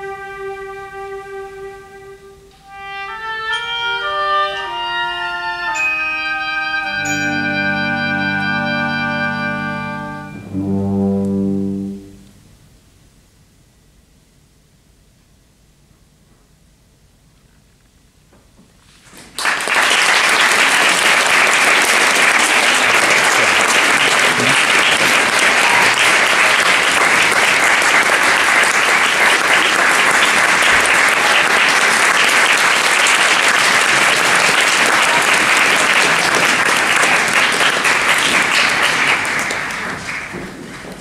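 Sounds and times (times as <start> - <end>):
audience applauding: 19.2 - 41.0.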